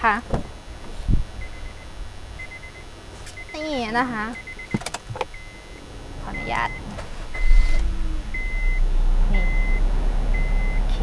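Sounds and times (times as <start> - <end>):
sharp clicks: 4.4 - 5.4
door-open warning chime beeping: 5.4 - 8.8.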